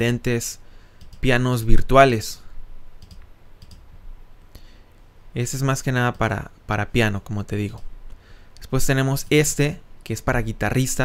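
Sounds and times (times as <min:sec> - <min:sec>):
faint room noise: 0:00.0 - 0:11.0
computer mouse clicking: 0:01.0 - 0:01.3, 0:03.0 - 0:03.9.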